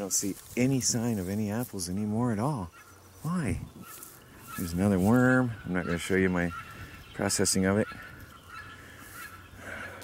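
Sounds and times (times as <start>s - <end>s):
faint fowl call: 2.5s - 10.0s.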